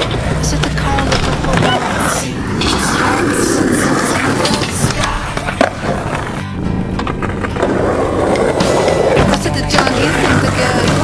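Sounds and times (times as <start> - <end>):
skateboard wheels rolling on concrete: 0.0 - 11.0
music with steady bass line: 4.9 - 11.0.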